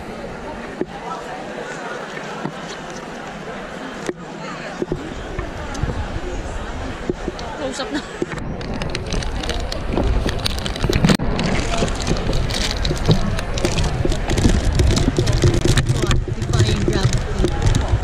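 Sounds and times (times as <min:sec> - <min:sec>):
audience chatter: 0:00.0 - 0:18.0
phone microphone rubbing and knocking: 0:08.2 - 0:18.0.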